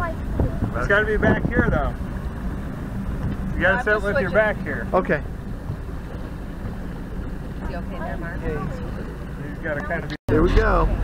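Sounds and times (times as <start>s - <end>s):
motorboat engine rumbling: 0.0s - 11.0s
faint voices talking: 7.4s - 11.0s.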